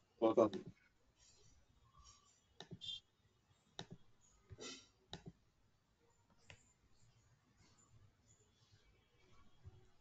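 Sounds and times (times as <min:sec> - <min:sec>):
computer mouse clicks: 0:02.6 - 0:02.8, 0:03.8 - 0:05.4, 0:06.3 - 0:06.7.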